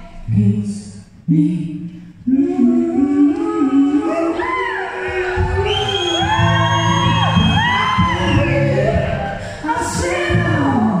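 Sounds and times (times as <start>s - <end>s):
person singing: 0.2s - 11.0s.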